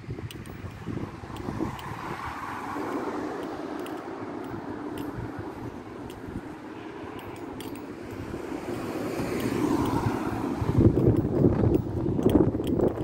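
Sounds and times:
motor vehicle passing: 0:00.0 - 0:13.0
wind rumble on microphone: 0:00.0 - 0:13.0.

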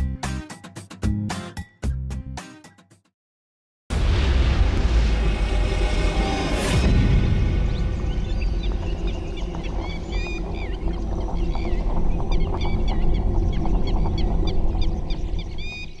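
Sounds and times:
birds chirping: 0:07.6 - 0:16.0.

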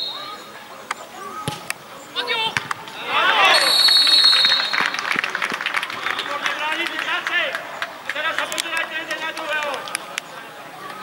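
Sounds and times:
players shouting and cheering: 0:00.0 - 0:11.0
long high whistle blast: 0:03.5 - 0:04.8.

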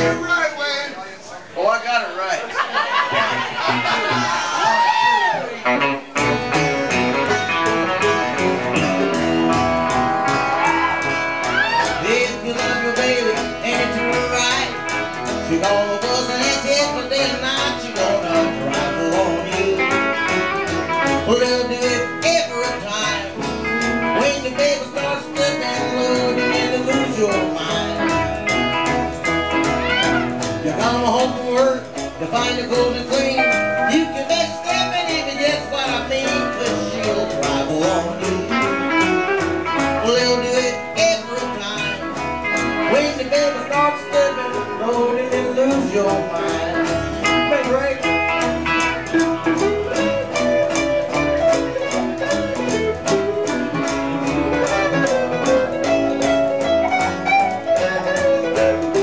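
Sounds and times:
country band playing: 0:00.0 - 0:59.0.

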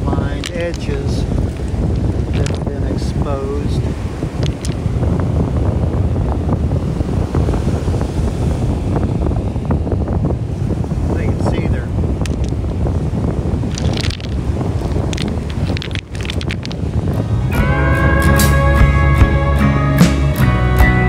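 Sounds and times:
wind buffeting microphone: 0:00.0 - 0:20.6
cobbles knocking together: 0:00.2 - 0:02.8, 0:04.4 - 0:04.8, 0:12.2 - 0:12.8, 0:13.7 - 0:17.3.

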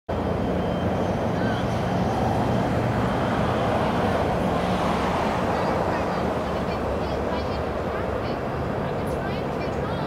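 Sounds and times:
road traffic noise: 0:00.1 - 0:10.0.

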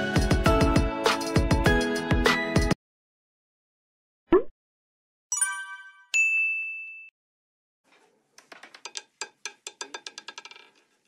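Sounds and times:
high bell ding: 0:05.3 - 0:07.1.

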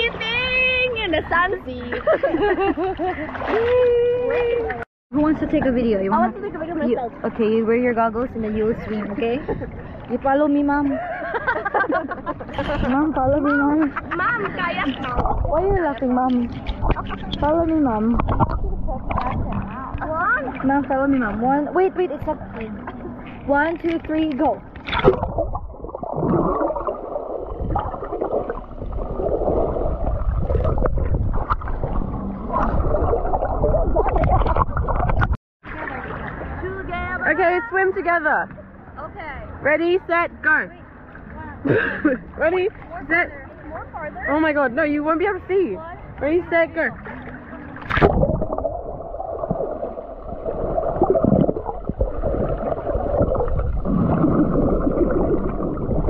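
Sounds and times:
underwater water rushing: 0:14.8 - 0:22.6, 0:24.1 - 0:37.1, 0:47.6 - 0:56.0.

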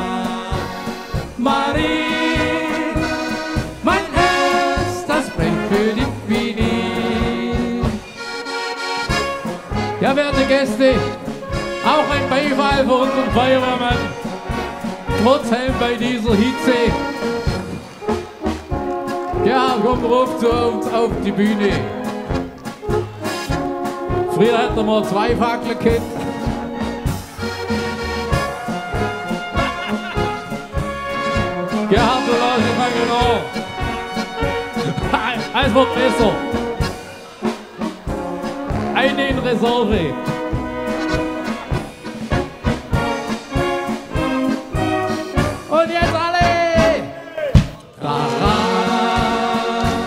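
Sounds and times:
singing: 0:00.0 - 0:08.0, 0:47.8 - 0:50.0
accordion: 0:00.0 - 0:47.2, 0:48.0 - 0:50.0
brass band playing polka: 0:00.0 - 0:50.0.

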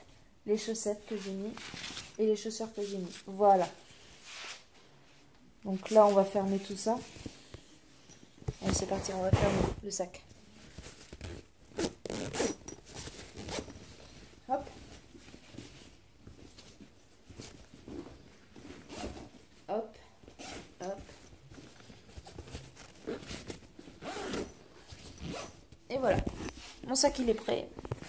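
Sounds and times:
bag zipper being pulled: 0:08.7 - 0:09.8, 0:11.2 - 0:13.8, 0:20.4 - 0:21.0, 0:23.0 - 0:25.6.

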